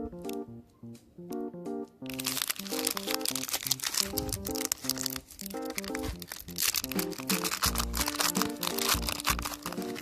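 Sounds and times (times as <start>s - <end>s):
simple background music melody: 0.0s - 10.0s
plastic wrapper crinkling: 2.0s - 10.0s.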